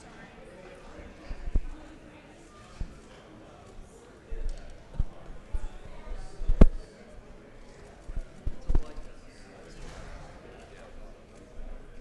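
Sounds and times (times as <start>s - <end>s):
murmur of voices: 0.0s - 12.0s
dull thumps and knocks: 8.2s - 9.0s.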